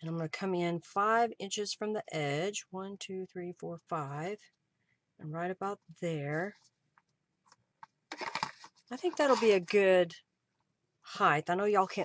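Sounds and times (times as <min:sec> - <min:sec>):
fabric and ribbon rustling: 0:07.4 - 0:09.8.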